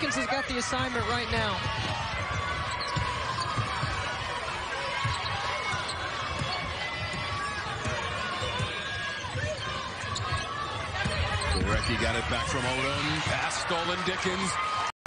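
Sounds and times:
basketball bouncing on wooden court: 0.0s - 13.4s
murmur of arena crowd: 0.0s - 14.9s.

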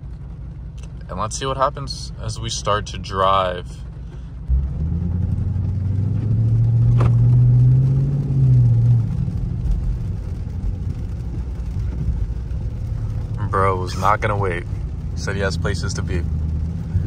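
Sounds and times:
car engine pulling away: 0.0s - 17.0s.

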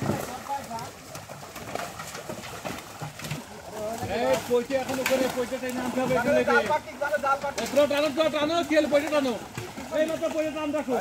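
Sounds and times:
splashes and knocks in shallow water: 0.0s - 11.0s.

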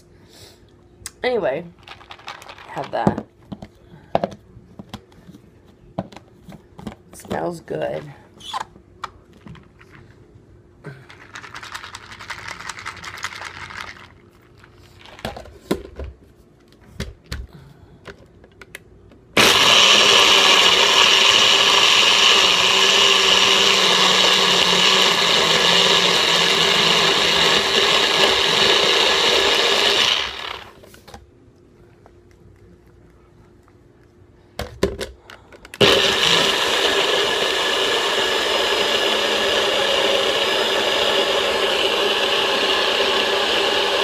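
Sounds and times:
blender running: 19.4s - 30.8s, 35.8s - 44.0s.

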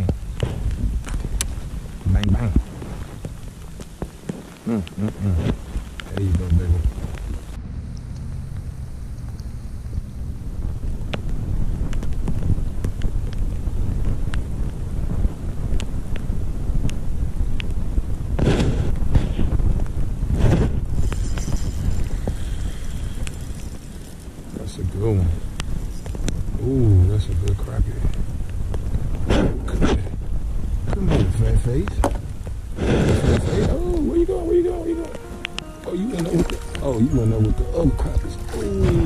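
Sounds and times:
wind buffeting microphone: 0.0s - 34.8s
rain ticking: 0.0s - 39.0s.

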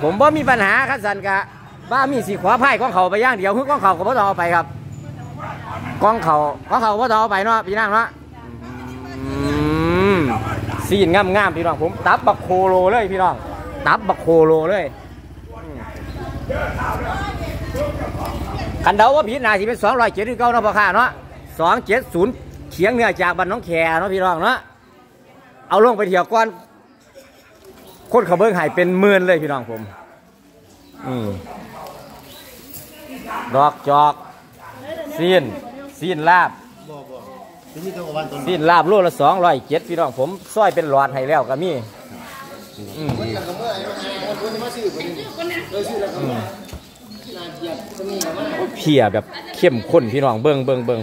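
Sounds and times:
market background noise: 0.0s - 51.0s
animal call rising in pitch: 8.4s - 10.5s.

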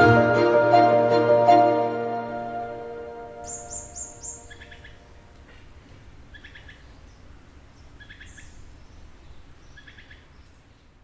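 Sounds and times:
bird calling: 3.3s - 10.5s
high bird chirps: 3.4s - 5.2s.

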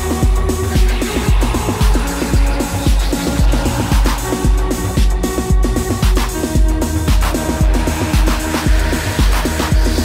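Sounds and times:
electro house music: 0.0s - 10.0s
hi-hats: 0.0s - 10.0s
staccato synth bass riff: 0.0s - 10.0s
steady kick drum: 0.0s - 10.0s.

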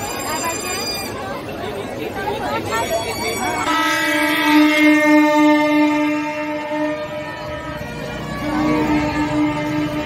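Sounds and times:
crowd chatter: 0.0s - 10.0s.

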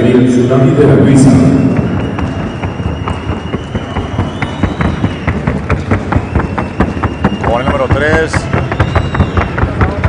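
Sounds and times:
horse hoofbeats: 1.3s - 10.0s.

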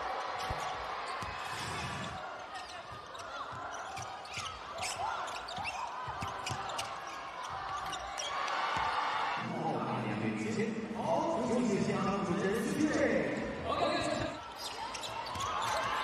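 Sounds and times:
crowd voices: 0.0s - 16.0s
sneaker squeaks: 0.2s - 9.0s, 14.0s - 16.0s.

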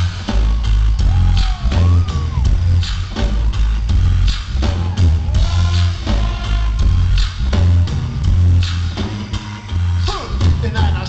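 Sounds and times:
live dancehall band music: 0.0s - 11.0s.

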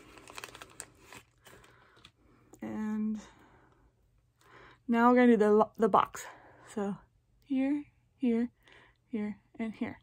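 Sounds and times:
plastic packet crinkling: 0.0s - 2.1s.

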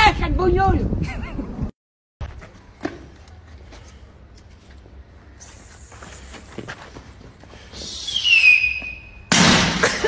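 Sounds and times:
whistle gliding downward: 7.8s - 9.2s.

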